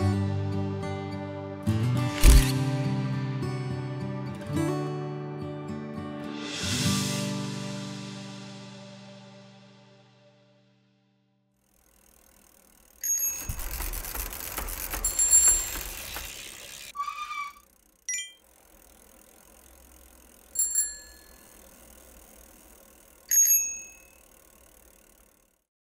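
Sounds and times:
rattling rolling bicycle: 11.6s - 25.7s
bicycle bell ringing: 12.0s - 18.6s, 19.7s - 25.2s.

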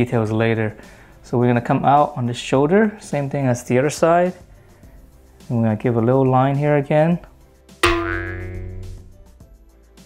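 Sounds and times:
quiet background music: 0.0s - 9.4s
cartoon pitched hit ringing: 7.8s - 9.2s.

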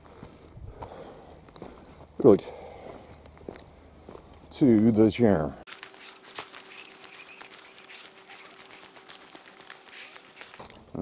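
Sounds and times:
faint bird calls: 5.9s - 10.8s.

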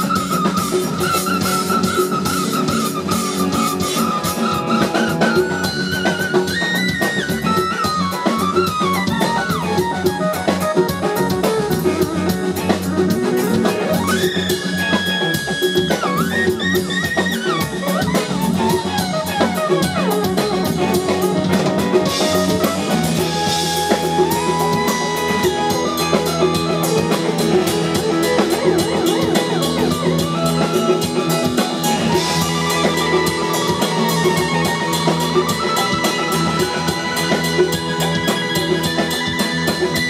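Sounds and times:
funk band playing: 0.0s - 40.0s
sliding bent high notes: 0.0s - 40.0s.

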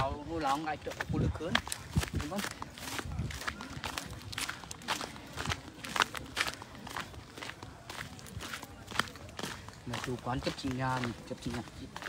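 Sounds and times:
faint voices: 0.0s - 12.0s
footsteps walking: 0.0s - 12.0s.

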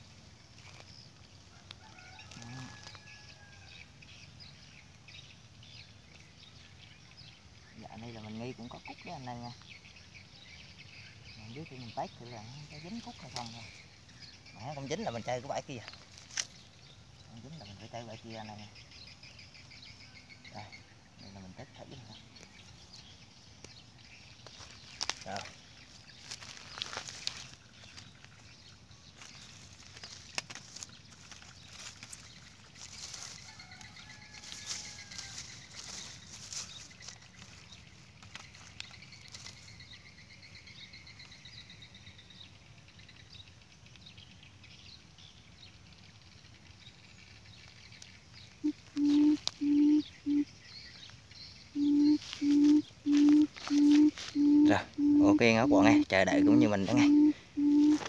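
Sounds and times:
hands rustling in dry grass: 0.0s - 3.3s, 15.1s - 16.8s, 22.2s - 40.1s, 47.6s - 49.8s, 51.9s - 55.0s, 55.7s - 58.0s
faint birdsong: 0.0s - 58.0s
quail hooting: 48.6s - 50.6s, 51.7s - 58.0s.

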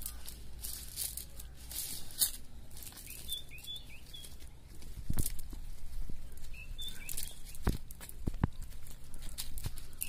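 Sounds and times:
net and dry leaves rustling: 0.0s - 10.0s
small bird chirping: 2.0s - 4.6s, 6.2s - 7.8s.

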